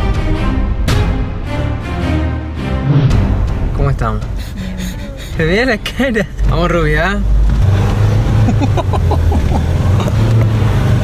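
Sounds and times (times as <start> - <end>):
people talking: 3.8 - 7.3
car engine pulling hard: 4.4 - 11.0.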